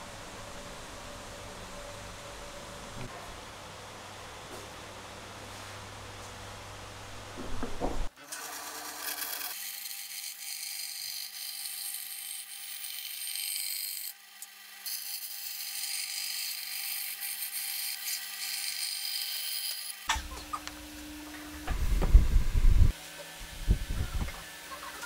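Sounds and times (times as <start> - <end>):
band saw cutting wood: 8.2 - 21.7.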